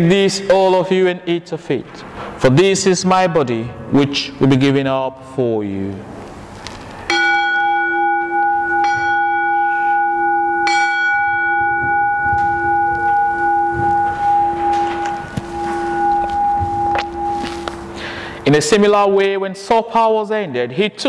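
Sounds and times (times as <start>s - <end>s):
altar bell ringing: 7.0s - 19.2s.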